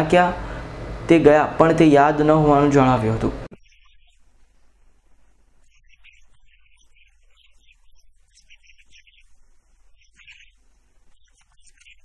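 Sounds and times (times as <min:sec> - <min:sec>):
low electrical hum: 0:00.0 - 0:12.0
faint birds chirping: 0:03.5 - 0:12.0.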